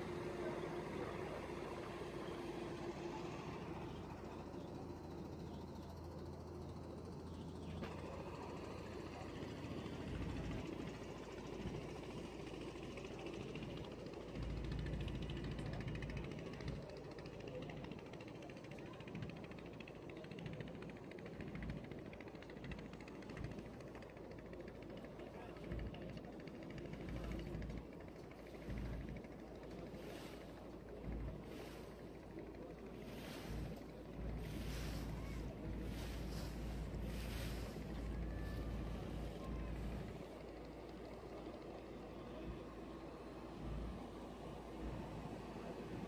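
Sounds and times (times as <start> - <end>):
boat under way: 0.0 - 46.0.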